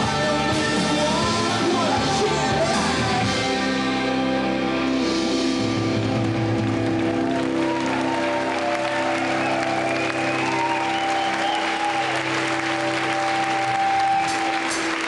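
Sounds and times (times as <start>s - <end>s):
electric guitars and bass ringing: 0.0s - 15.0s
audience applauding: 5.9s - 15.0s.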